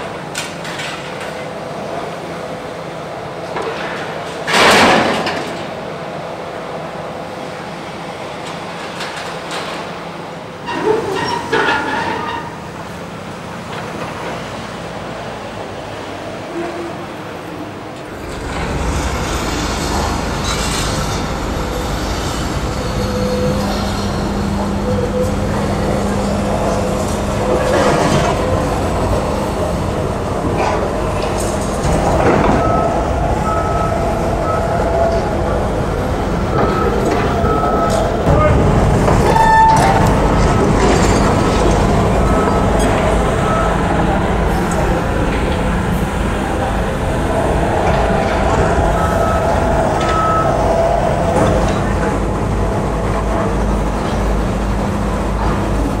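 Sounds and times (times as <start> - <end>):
traffic: 0.0 - 56.0
heavy machinery rumble: 16.5 - 56.0
electronic warning beeps: 32.4 - 35.3, 36.5 - 38.3, 42.1 - 44.2, 48.7 - 51.0.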